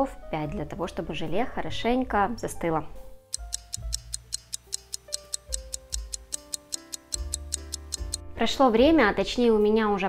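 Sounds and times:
light background music: 0:00.0 - 0:10.0
fast clock ticking: 0:03.4 - 0:08.2.

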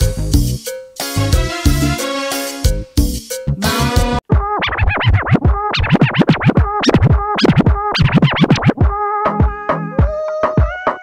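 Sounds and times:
music track playing: 0:00.0 - 0:08.8
dj scratching: 0:03.6 - 0:08.9.

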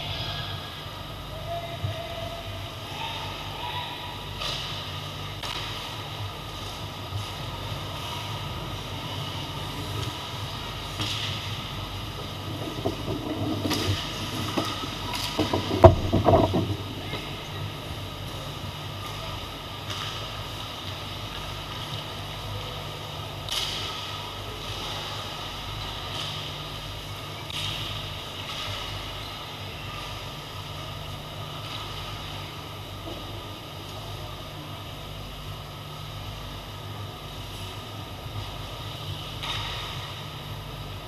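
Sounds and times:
steady low hum: 0:00.0 - 0:41.0
stick and puck clacks: 0:05.4 - 0:06.0, 0:12.5 - 0:17.2, 0:23.5 - 0:24.1.

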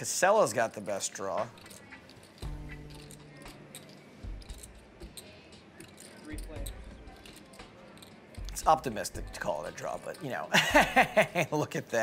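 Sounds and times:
murmur of voices: 0:00.0 - 0:10.6
poker chips clicking: 0:00.6 - 0:09.0.

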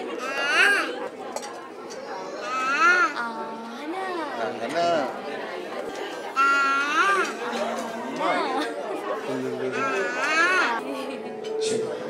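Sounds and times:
chattering voices: 0:00.0 - 0:12.0.

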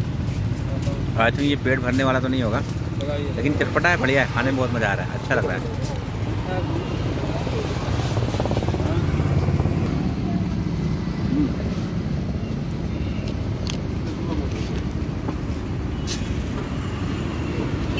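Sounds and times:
street traffic rumble: 0:00.0 - 0:17.9.

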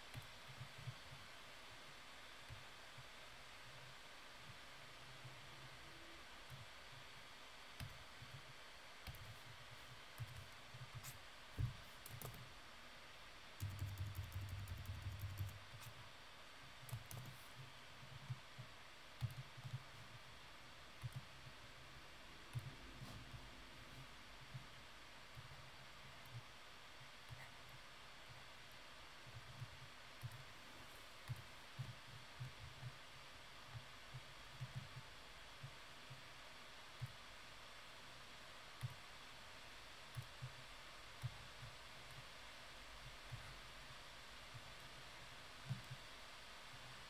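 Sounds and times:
low steady hiss: 0:00.0 - 0:47.0
computer mouse and keyboard clicks: 0:07.8 - 0:09.4, 0:10.1 - 0:12.5, 0:13.6 - 0:16.0, 0:16.8 - 0:20.2, 0:21.0 - 0:21.5, 0:22.5 - 0:23.4, 0:33.7 - 0:36.2, 0:38.8 - 0:39.0, 0:40.1 - 0:40.6.

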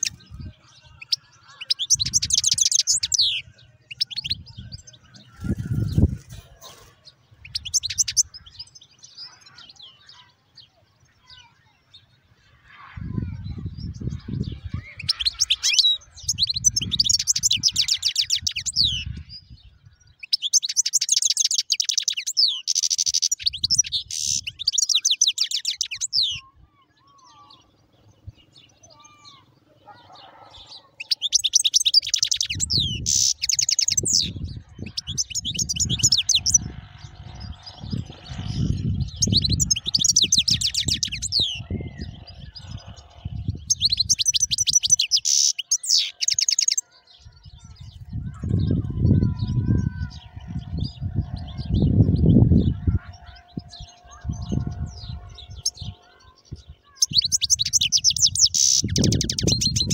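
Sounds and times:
finch twittering trills: 0:00.0 - 0:59.9.

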